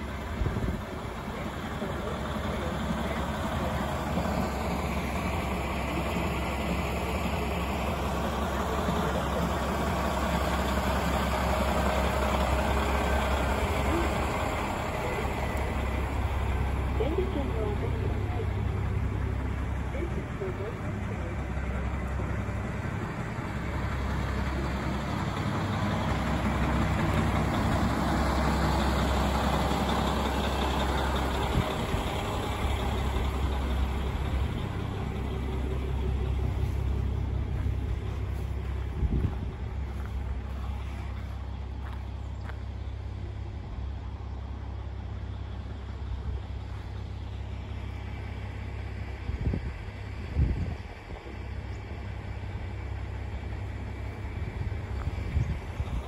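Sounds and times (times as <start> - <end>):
diesel railcar engine idling: 0.0 - 56.0.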